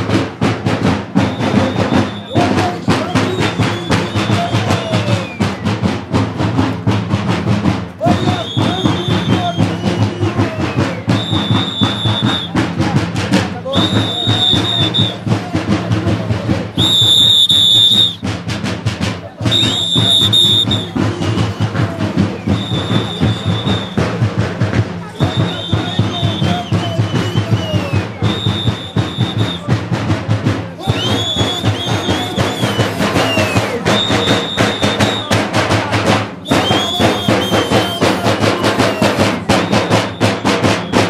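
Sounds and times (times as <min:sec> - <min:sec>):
drums beaten fast: 0:00.0 - 0:41.0
shrill whistle blasts: 0:01.2 - 0:05.8, 0:08.0 - 0:12.7, 0:13.7 - 0:15.3, 0:16.8 - 0:18.3, 0:19.4 - 0:24.2, 0:25.1 - 0:29.8, 0:30.8 - 0:35.4, 0:36.4 - 0:41.0
people shouting: 0:01.2 - 0:05.9, 0:07.9 - 0:18.3, 0:19.0 - 0:29.8, 0:30.4 - 0:41.0.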